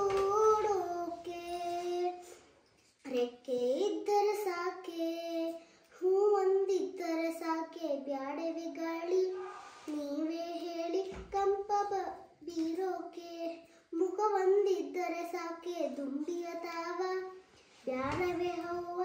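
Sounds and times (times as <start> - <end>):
girl singing unaccompanied: 0.0 - 19.0.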